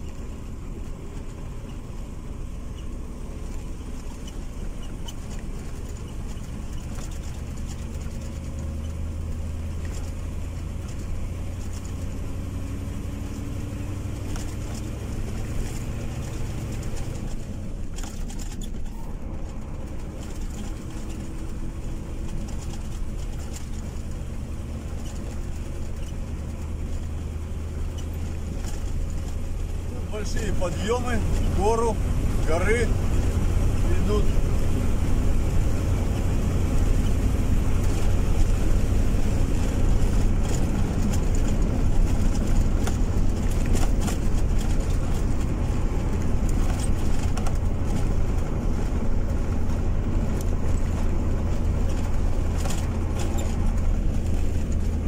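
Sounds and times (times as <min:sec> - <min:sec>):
car engine hum: 0:00.0 - 0:55.0
tyre road noise: 0:00.0 - 0:55.0.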